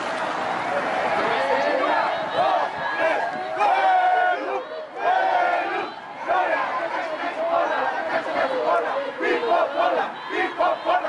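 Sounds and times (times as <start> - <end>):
crowd of protesters shouting: 0.0 - 11.0.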